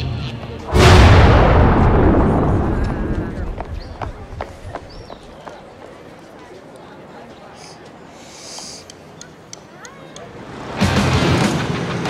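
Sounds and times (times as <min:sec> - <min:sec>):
loud boom: 0:00.7 - 0:04.5
faint clicks: 0:07.8 - 0:10.3.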